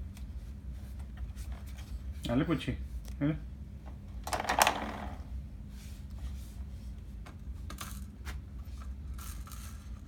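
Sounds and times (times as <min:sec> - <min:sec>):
plastic toy rattle: 0:09.1 - 0:10.0.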